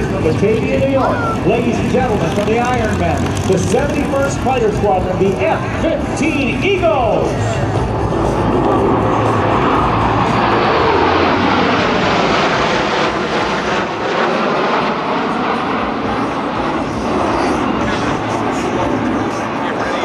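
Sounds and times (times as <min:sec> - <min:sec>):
fighter jets roaring overhead: 0:00.0 - 0:20.0
jet engine whine falling in pitch: 0:00.0 - 0:20.0.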